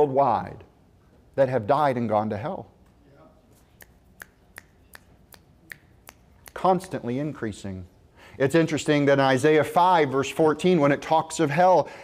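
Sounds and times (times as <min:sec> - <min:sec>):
finger snapping: 0:03.8 - 0:06.6.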